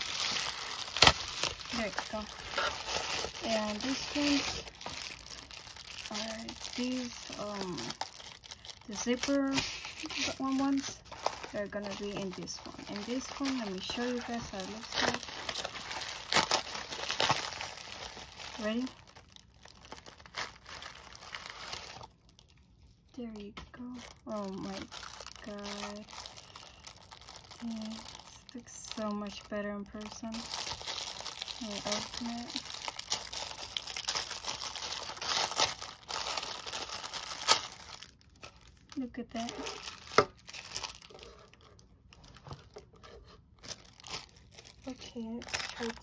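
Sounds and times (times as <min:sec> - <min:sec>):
plastic packaging crinkling: 0:00.0 - 0:46.0.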